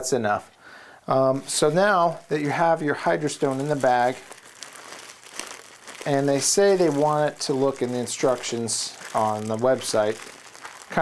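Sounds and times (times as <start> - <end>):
plastic bag crinkling: 1.4 - 11.0.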